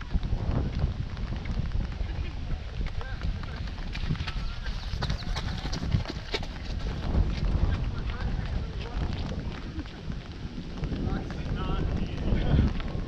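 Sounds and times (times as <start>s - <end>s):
wind rumble on microphone: 0.0s - 13.0s
footsteps on wet asphalt: 0.1s - 13.0s.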